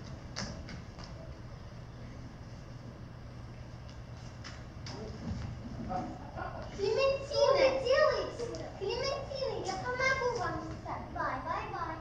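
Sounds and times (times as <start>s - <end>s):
child speaking loudly: 6.8s - 12.0s.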